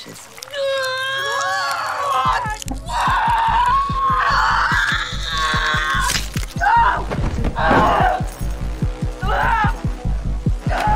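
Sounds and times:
dramatic score music: 0.3 - 10.9
woman screaming in pain: 0.5 - 8.3.

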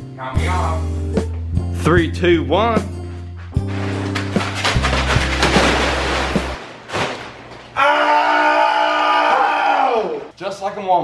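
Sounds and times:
background music: 0.0 - 6.6
body sliding on wet plastic tarp: 3.7 - 7.4
person yelling: 7.8 - 10.2.

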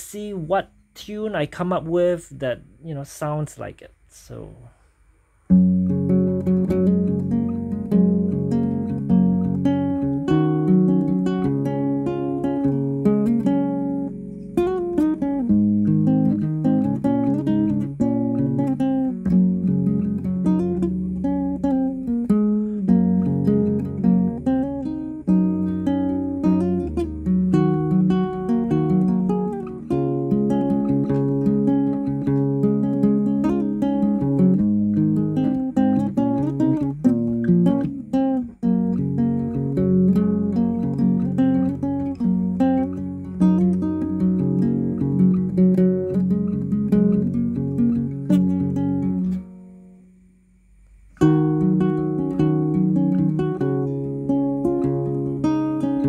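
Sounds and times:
classical guitar playing: 5.5 - 56.0.

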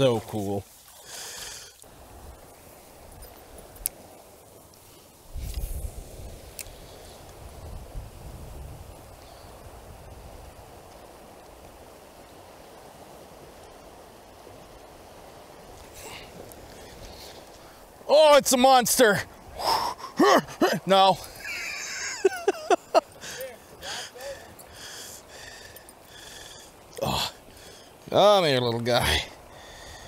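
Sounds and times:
stream water flowing: 0.0 - 30.0
wind buffeting microphone: 1.9 - 18.0.

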